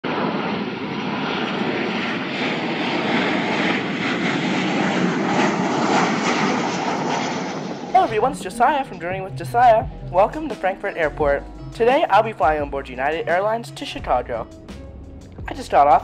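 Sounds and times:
airliner jet engines: 0.0s - 12.1s, 13.2s - 16.0s.

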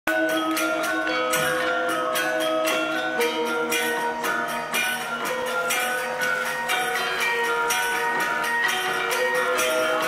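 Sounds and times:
gamelan playing: 0.1s - 10.0s.

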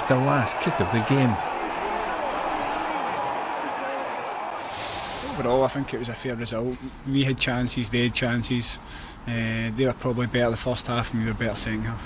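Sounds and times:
stadium crowd voices: 0.0s - 6.9s
high hiss: 4.6s - 5.6s.

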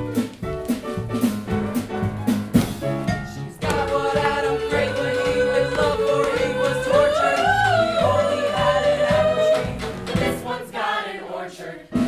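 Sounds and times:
walking upright bass line: 0.0s - 10.6s
piano: 0.0s - 11.0s, 11.7s - 12.0s
ensemble of voices singing: 3.2s - 12.0s.

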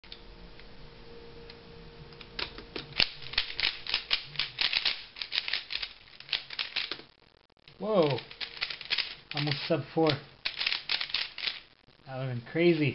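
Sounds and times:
puzzle cube turning clicks: 2.2s - 7.1s, 8.0s - 11.6s.

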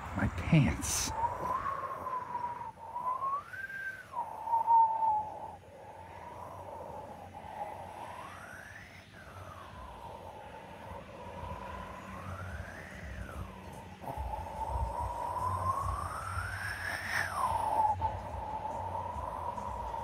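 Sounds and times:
eerie whistle-like tone: 0.4s - 20.0s.

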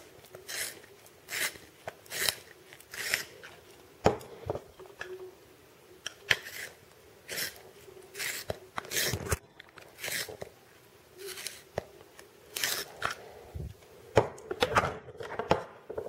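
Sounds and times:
pencil sharpener scraping: 0.3s - 3.6s, 6.3s - 10.5s, 11.2s - 11.7s, 12.5s - 13.2s.

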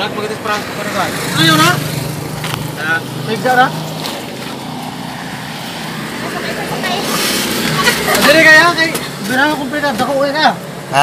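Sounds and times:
person laughing: 7.6s - 8.5s.

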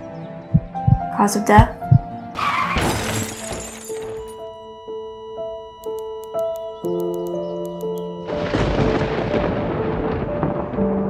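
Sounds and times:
sustained music: 0.0s - 2.7s, 3.3s - 11.0s
glass shattering: 2.5s - 4.4s.

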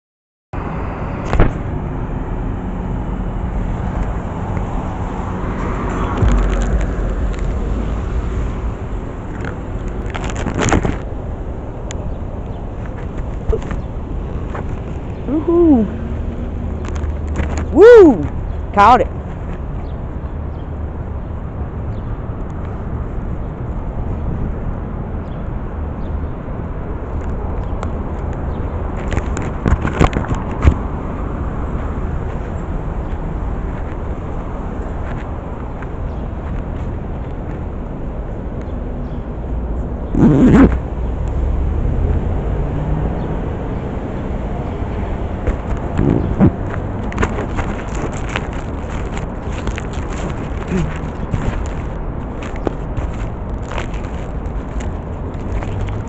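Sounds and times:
street traffic rumble: 0.6s - 56.0s.

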